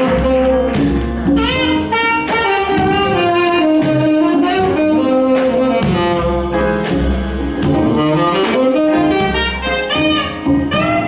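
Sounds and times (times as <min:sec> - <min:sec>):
drum kit with cymbals: 0:00.0 - 0:11.0
jazz band playing: 0:00.0 - 0:11.0
melodic lead line: 0:00.0 - 0:11.0.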